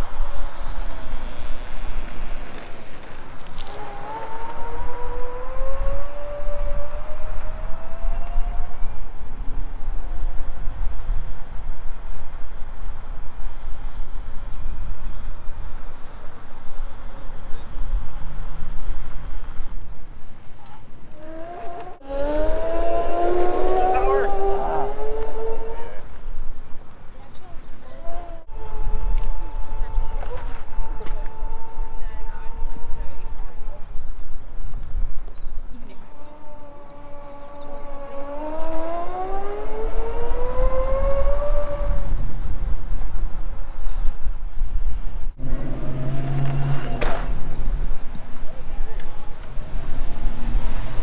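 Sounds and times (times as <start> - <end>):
electric scooter motor whine: 0.0 - 19.8, 20.6 - 26.4, 27.7 - 43.4
wind rumble on microphone: 0.0 - 51.0.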